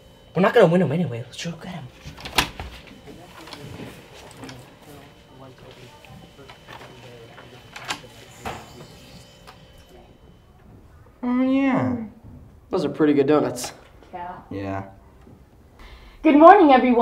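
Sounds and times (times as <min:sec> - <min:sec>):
murmur of low voices: 0:01.9 - 0:11.2
handling and movement noises: 0:02.0 - 0:10.9.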